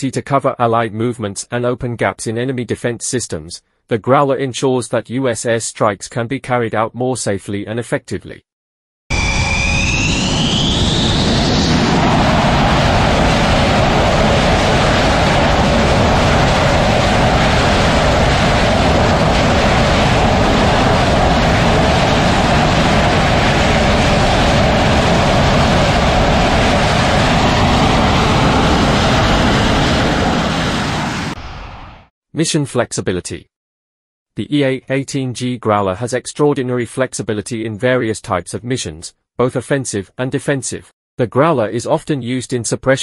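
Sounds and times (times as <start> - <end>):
high engine whine: 9.1 - 32.0
jet engines running: 9.1 - 32.1.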